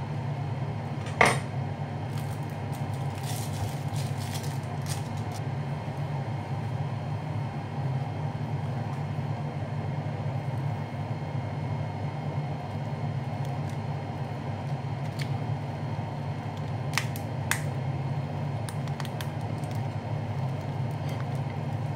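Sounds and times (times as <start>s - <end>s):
steady low hum: 0.0s - 21.9s
plastic wrapper crinkling: 2.1s - 5.4s.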